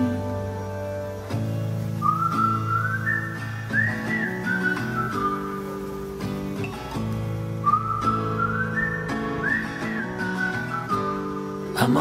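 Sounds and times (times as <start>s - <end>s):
acoustic guitar chords: 0.0s - 12.0s
whistled melody: 1.9s - 6.0s, 7.4s - 11.8s.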